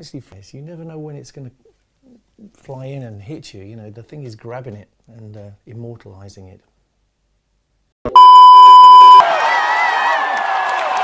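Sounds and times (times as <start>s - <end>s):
steady beep tone: 8.1s - 9.2s
concert crowd cheering: 9.2s - 11.0s.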